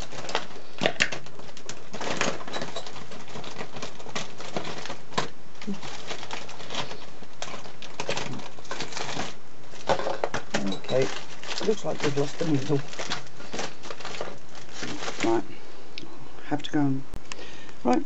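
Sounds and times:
faint clicks and rustles: 0.0 - 15.5
background hiss: 0.0 - 18.0.

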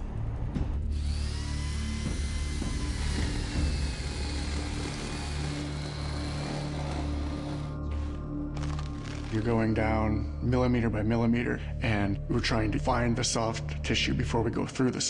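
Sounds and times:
low background music: 0.0 - 15.0
small power tool chipping rock: 0.9 - 7.7.

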